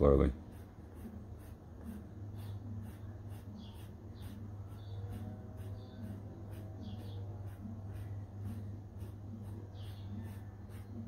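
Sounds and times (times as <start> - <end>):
cotton swab scratching canvas: 0.5 - 11.0.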